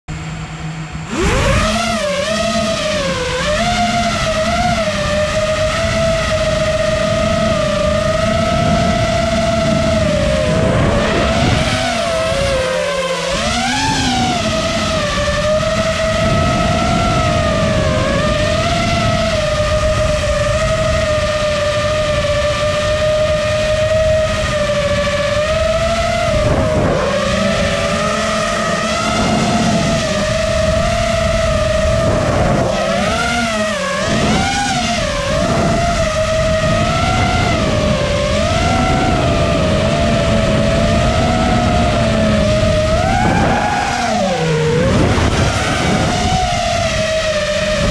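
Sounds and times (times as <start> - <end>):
drone motors whining: 0.1 - 47.9.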